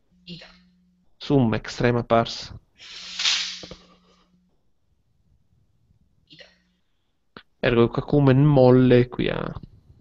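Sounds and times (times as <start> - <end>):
faint low hum: 0.0 - 10.0
person blowing nose: 2.8 - 3.9.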